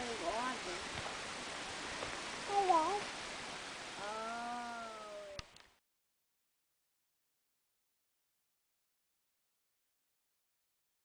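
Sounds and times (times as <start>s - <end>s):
background hiss: 0.0s - 5.8s.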